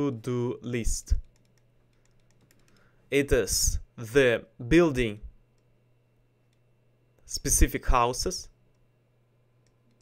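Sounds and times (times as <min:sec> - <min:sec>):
man speaking: 0:00.0 - 0:01.3, 0:03.1 - 0:05.4, 0:07.2 - 0:08.6
faint electrical hum: 0:00.0 - 0:10.0
faint clicks: 0:09.6 - 0:10.0.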